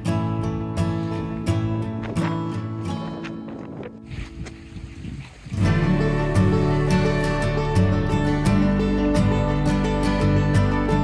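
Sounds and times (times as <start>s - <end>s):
acoustic guitar background music: 0.0s - 11.0s
music with heavy bass: 5.6s - 11.0s.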